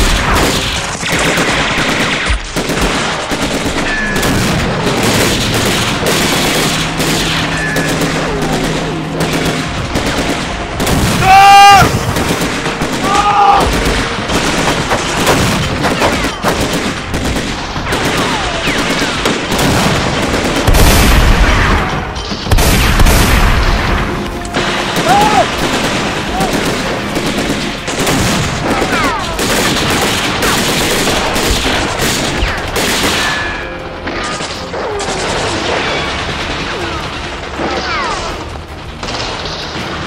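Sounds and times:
rapid machine-gun fire: 0.0s - 33.4s, 34.6s - 40.0s
steady gunfire: 0.0s - 33.4s
man shouting: 11.2s - 11.9s, 25.0s - 25.5s
explosion: 19.2s - 25.6s.

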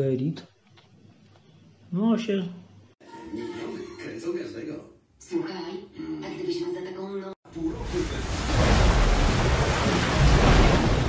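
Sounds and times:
rushing splashing water: 7.6s - 11.0s.

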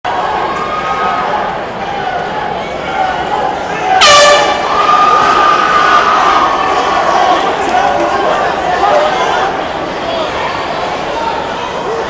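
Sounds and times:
crowd chatter: 0.0s - 12.0s
air horn blast: 4.0s - 4.7s.

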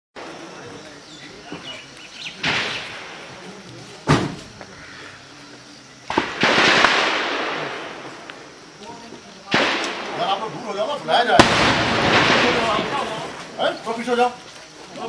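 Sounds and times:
distant gunshots echoing: 2.4s - 3.4s, 6.1s - 8.4s, 9.5s - 10.7s, 11.3s - 13.6s.

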